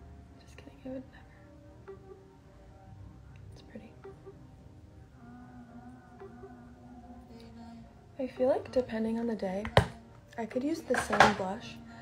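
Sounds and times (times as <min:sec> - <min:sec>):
low steady background tones: 0:00.0 - 0:12.0
woman whispering: 0:03.6 - 0:04.0.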